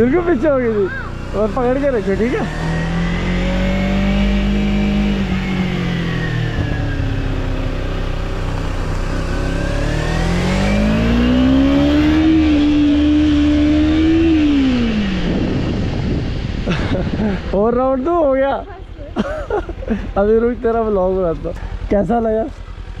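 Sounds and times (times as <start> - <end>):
motorcycle engine revving: 0.0 - 23.0.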